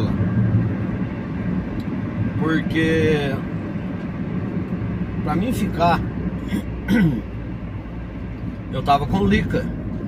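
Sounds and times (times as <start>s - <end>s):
van engine and road noise: 0.0s - 10.0s.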